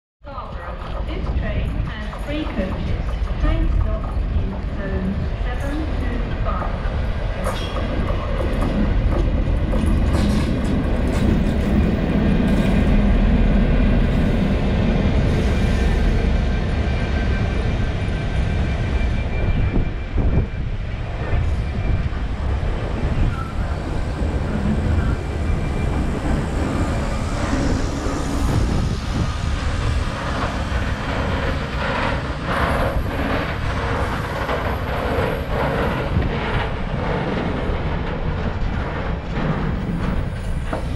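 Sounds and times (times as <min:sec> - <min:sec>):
diesel locomotive engine rumble: 0:00.2 - 0:40.9.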